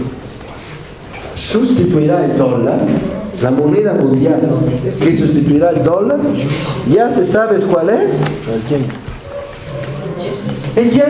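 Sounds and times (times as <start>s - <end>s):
man speaking: 1.4s - 9.0s, 10.7s - 11.0s.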